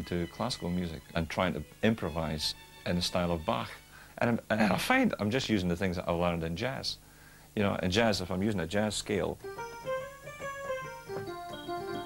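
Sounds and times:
electronic keyboard melody: 9.4 - 12.0.

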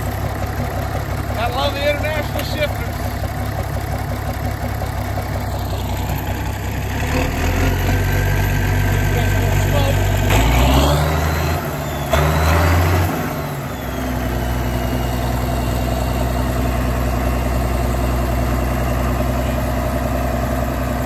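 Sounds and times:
diesel tractor engine revving: 0.0 - 21.0.

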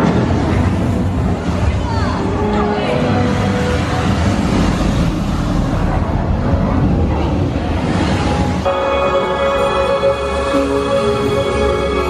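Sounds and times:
rushing wind and water effects: 0.0 - 12.0
soundtrack music: 0.0 - 12.0.

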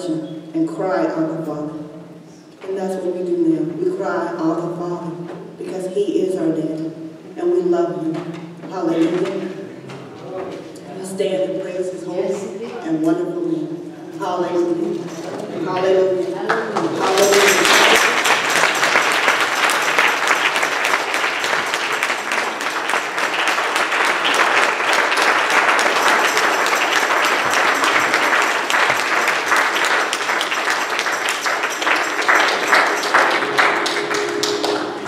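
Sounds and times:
congregation clapping: 16.5 - 35.0.

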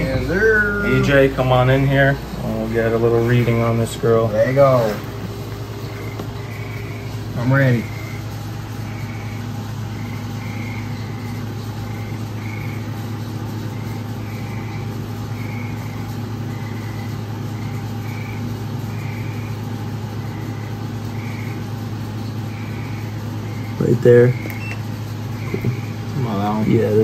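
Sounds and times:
low electrical hum: 0.0 - 27.0.

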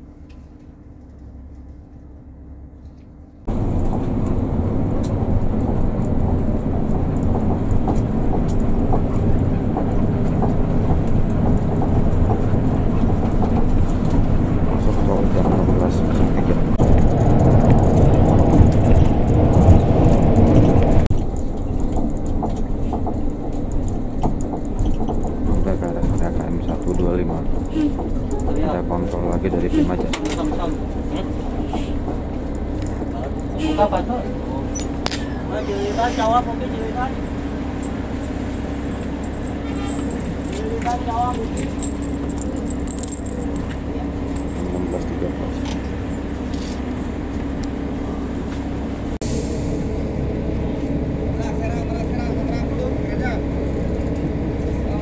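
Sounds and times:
coach engine and road rumble: 0.0 - 55.0
low hum: 0.0 - 55.0.

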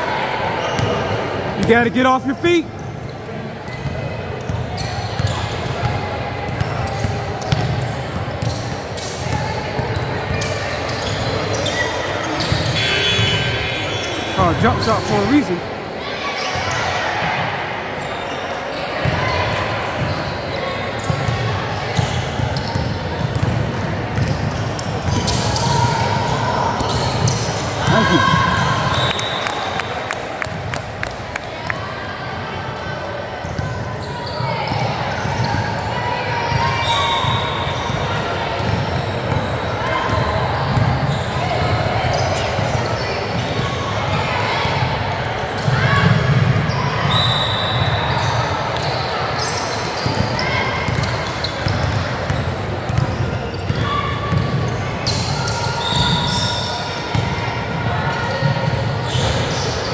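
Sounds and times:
echoing voices: 27.6 - 28.8.

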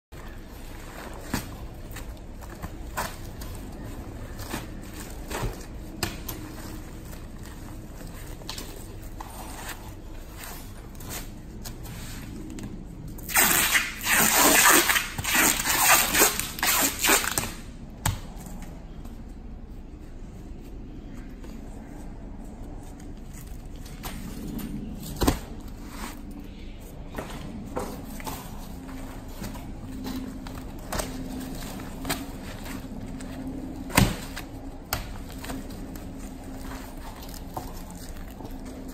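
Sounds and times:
veneer sheets rustling: 0.2 - 17.6
adhesive tape ripping off roll: 13.2 - 17.7.

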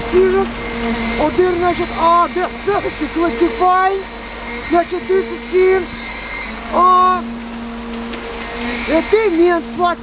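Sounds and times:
steady machine hum: 0.0 - 10.0.

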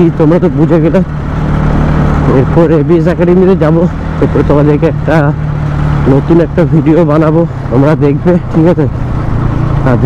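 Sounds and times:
man talking: 0.0 - 1.1, 2.2 - 5.4, 6.0 - 9.0, 9.8 - 10.0
motorcycle engine running: 0.0 - 10.0.

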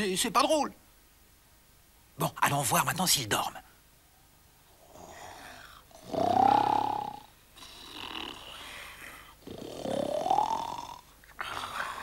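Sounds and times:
loud rasping snore: 4.8 - 12.0.

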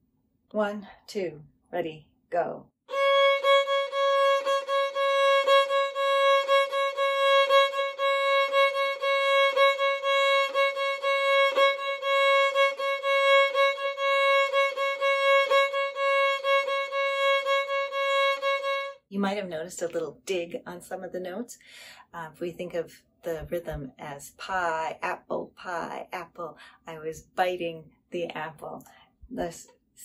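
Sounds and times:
violin repeated note shuffle bowing: 2.9 - 19.0.

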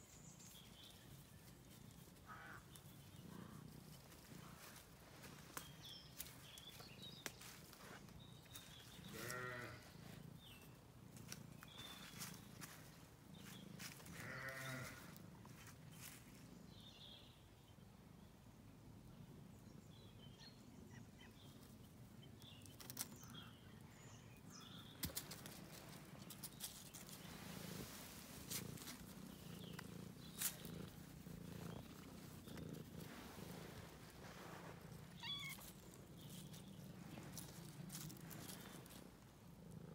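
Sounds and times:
cat purring: 0.4 - 9.1, 9.8 - 14.2, 18.7 - 39.9
sheep bleating: 9.1 - 9.9, 14.0 - 15.2
faint bird chirps: 35.2 - 36.9.

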